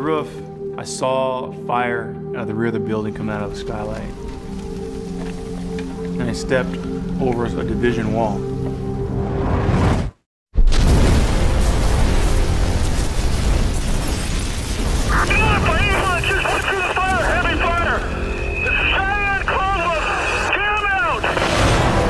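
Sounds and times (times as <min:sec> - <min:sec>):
dramatic music: 0:01.5 - 0:09.8, 0:10.8 - 0:22.0
sudden boom: 0:10.6 - 0:16.3
loud rumble of fire: 0:10.6 - 0:22.0
high warbling chirping tone: 0:15.2 - 0:21.2.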